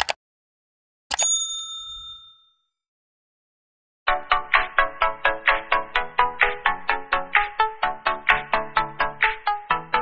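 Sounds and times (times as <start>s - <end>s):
small bell ding: 1.1s - 2.8s.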